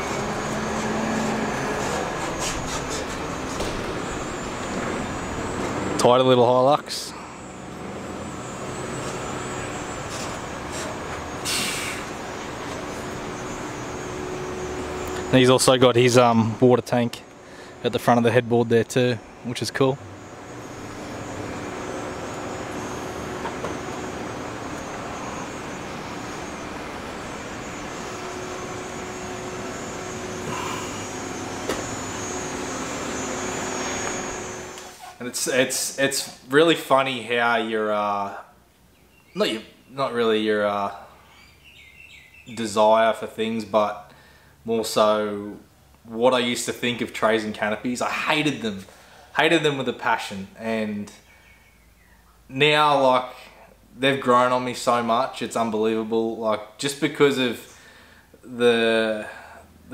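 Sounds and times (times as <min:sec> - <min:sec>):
mechanical drone with hum: 0:00.0 - 0:43.7
brief hiss: 0:10.1 - 0:12.1.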